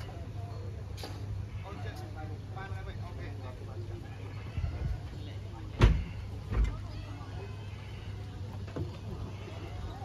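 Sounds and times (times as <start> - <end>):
faint murmured voices: 0.0 - 10.0.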